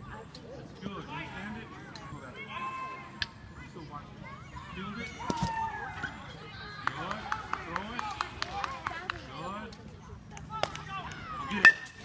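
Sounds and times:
background voices of children and adults: 0.0s - 11.7s.

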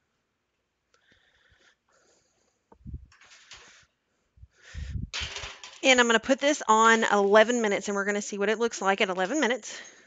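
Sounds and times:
woman speaking: 5.8s - 9.9s.

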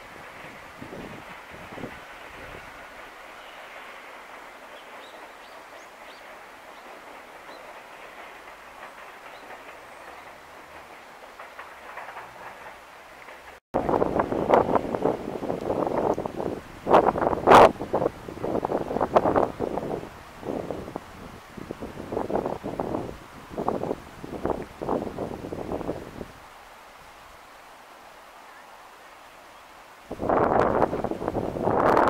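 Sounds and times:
wind buffeting microphone: 0.0s - 13.0s, 13.8s - 26.6s, 30.0s - 32.0s
freight train wheels clattering on rail: 0.0s - 26.8s.

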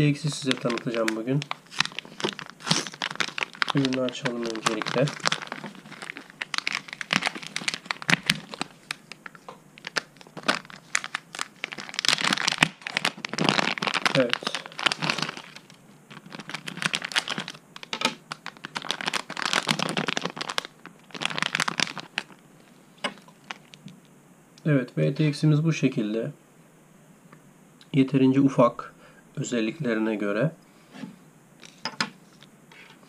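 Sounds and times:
plastic packaging rustling: 0.0s - 23.9s.

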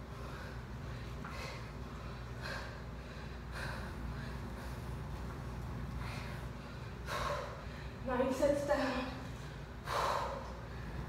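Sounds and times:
low steady hum: 0.0s - 11.0s
woman exhaling with exertion: 9.8s - 11.0s.

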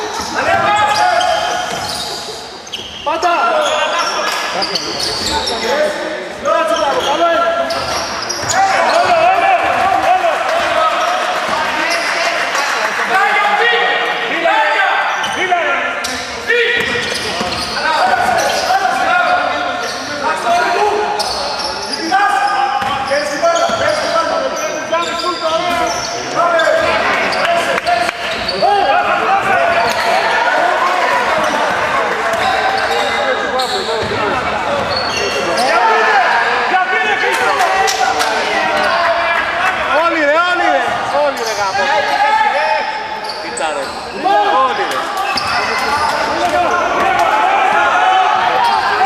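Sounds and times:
people shouting: 8.4s - 11.2s, 44.2s - 49.0s.

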